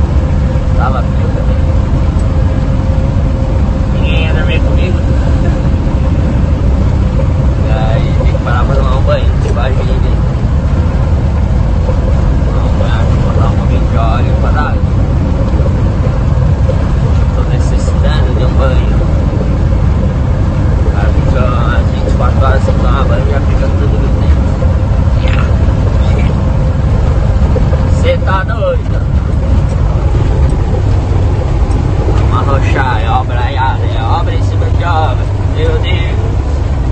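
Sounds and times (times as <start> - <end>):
constant hum: 0.0 - 36.9
truck engine and road rumble: 0.0 - 36.9
man talking: 0.7 - 1.7, 3.9 - 5.8, 7.6 - 10.3, 12.4 - 14.8, 17.2 - 19.4, 20.8 - 24.6, 25.2 - 26.4, 27.9 - 30.4, 32.2 - 36.3.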